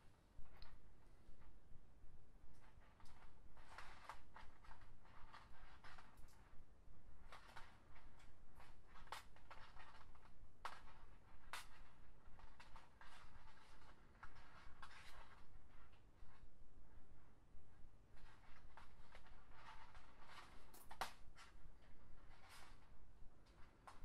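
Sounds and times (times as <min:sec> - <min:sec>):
plastic strands scraping and clicking: 0:07.2 - 0:16.4, 0:18.2 - 0:24.0.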